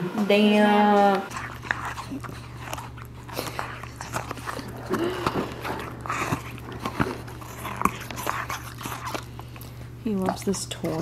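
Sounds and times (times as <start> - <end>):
dog chewing rubber toy: 0.8 - 11.0.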